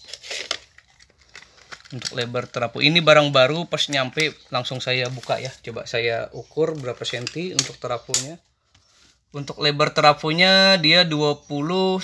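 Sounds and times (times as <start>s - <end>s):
rustling handling noise: 0.0s - 9.3s.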